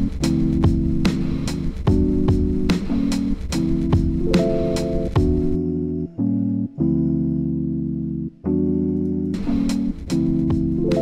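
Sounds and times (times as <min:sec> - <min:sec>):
hip-hop drum loop: 0:00.0 - 0:05.6, 0:09.4 - 0:11.0
electric piano chords: 0:00.0 - 0:11.0.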